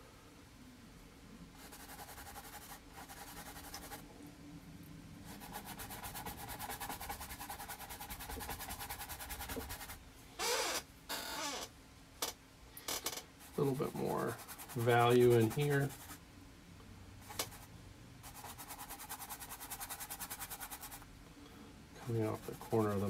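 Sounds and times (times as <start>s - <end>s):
paintbrush scrubbing on canvas: 5.3s - 10.0s, 13.4s - 16.2s, 22.3s - 23.0s.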